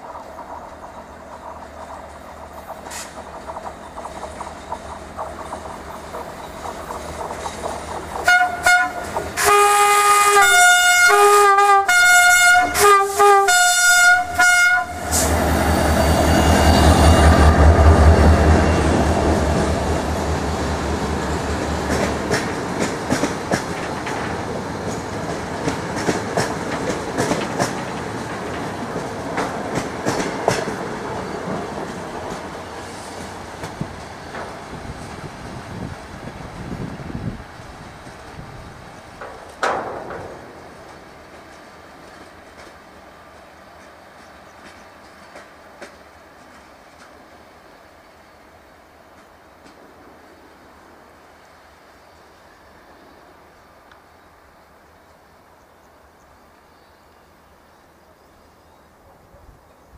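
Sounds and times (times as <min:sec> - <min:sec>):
train wheels clicking over rail joints: 0:00.0 - 0:09.6, 0:15.0 - 0:47.6
locomotive horn blasts: 0:08.2 - 0:15.3.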